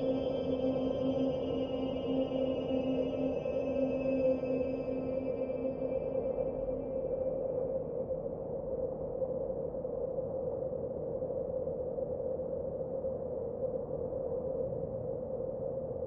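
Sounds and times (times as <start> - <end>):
ambient drone music: 0.0 - 7.2.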